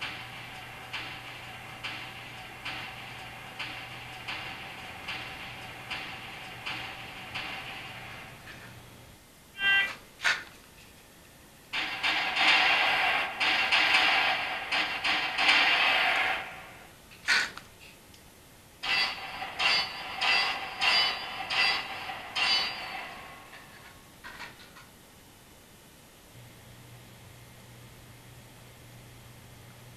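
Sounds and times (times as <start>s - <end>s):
ringing steel plate hits: 0.0s - 8.6s, 11.8s - 16.6s, 18.8s - 23.7s.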